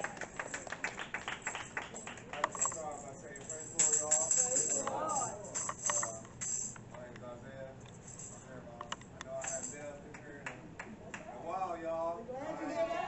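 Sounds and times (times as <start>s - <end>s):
tambourine jingling: 0.0s - 6.8s, 7.9s - 8.5s, 9.4s - 10.0s
voices: 2.0s - 7.8s.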